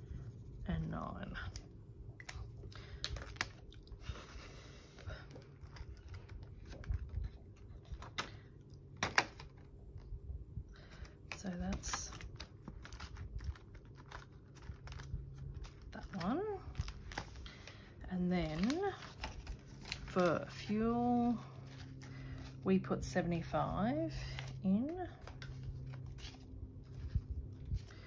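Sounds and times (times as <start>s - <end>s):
plastic binder clicks and rustles: 9.0s - 9.7s, 11.0s - 17.4s.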